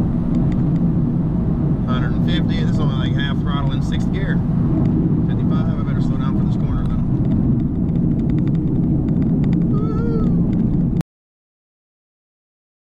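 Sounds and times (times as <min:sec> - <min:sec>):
wind road and engine noise in car: 0:00.0 - 0:11.0.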